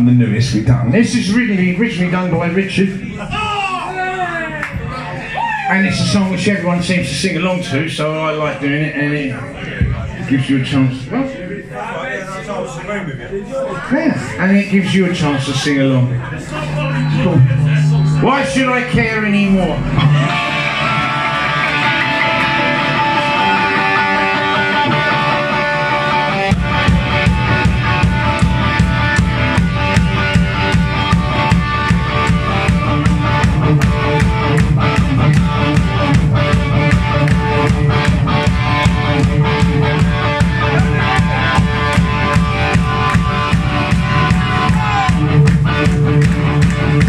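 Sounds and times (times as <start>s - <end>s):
bass guitar: 16.0s - 47.0s
electric guitar: 16.4s - 47.0s
drums: 16.9s - 47.0s.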